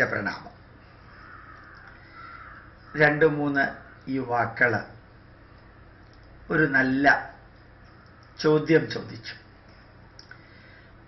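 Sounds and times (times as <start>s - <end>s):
person speaking: 0.0s - 0.7s, 2.9s - 5.1s, 6.3s - 9.6s
faint bird calls: 0.8s - 4.1s.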